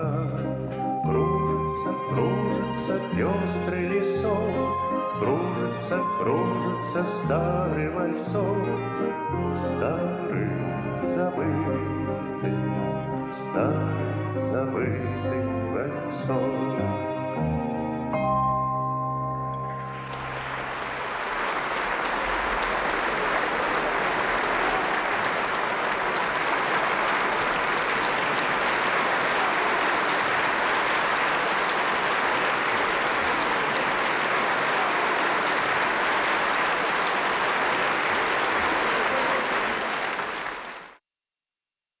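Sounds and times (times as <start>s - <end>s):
orchestra chord: 17.4s - 21.6s
audience applauding: 19.6s - 41.0s.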